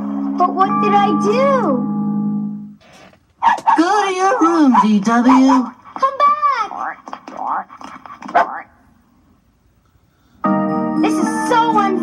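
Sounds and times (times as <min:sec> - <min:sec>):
cartoon dog barking: 0:03.4 - 0:07.7, 0:08.3 - 0:08.7.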